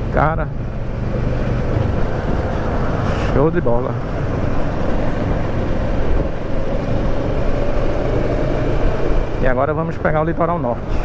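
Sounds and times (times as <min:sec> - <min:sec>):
wind rushing over microphone: 0:00.0 - 0:11.0.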